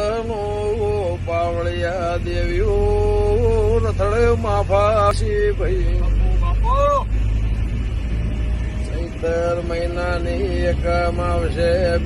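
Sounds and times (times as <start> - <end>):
road noise: 0.0 - 12.0
van engine rumble: 0.0 - 12.0.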